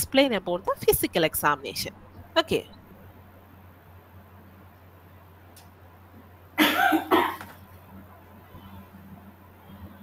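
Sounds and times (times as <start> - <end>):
person coughing: 6.6 - 7.6.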